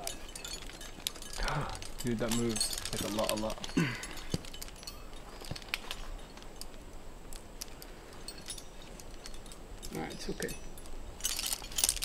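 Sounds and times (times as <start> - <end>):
carabiners clinking: 0.0 - 12.0.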